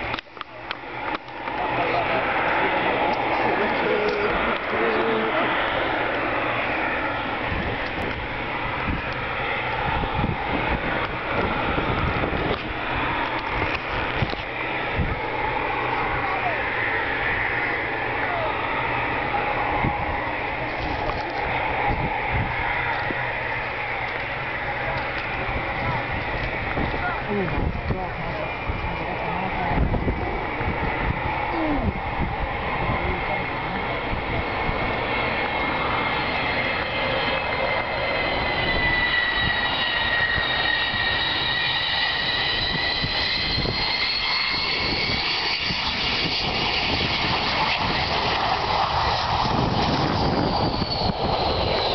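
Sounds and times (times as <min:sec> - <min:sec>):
distant jet engines rushing: 0:00.0 - 0:51.9
people talking: 0:01.4 - 0:05.6, 0:16.0 - 0:16.7, 0:18.2 - 0:18.6, 0:24.6 - 0:30.4, 0:31.5 - 0:32.0, 0:32.8 - 0:35.1.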